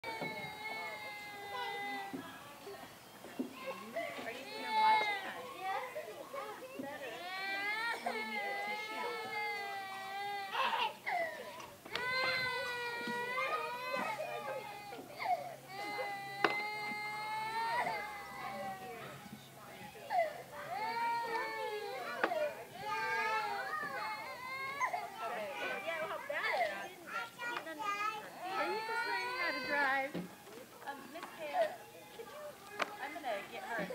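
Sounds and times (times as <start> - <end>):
toddler wailing: 0.0 - 2.2, 7.2 - 19.0, 20.1 - 26.6, 27.9 - 30.1
small children's voices: 0.0 - 33.9.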